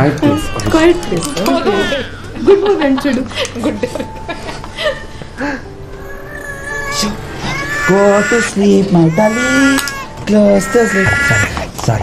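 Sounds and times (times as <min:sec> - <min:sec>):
baby crying: 0:00.0 - 0:02.3, 0:06.0 - 0:11.7.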